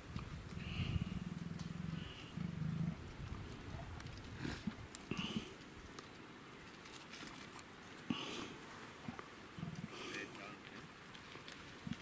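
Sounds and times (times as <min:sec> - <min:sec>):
leopard growling: 0:00.1 - 0:05.6, 0:08.1 - 0:10.4.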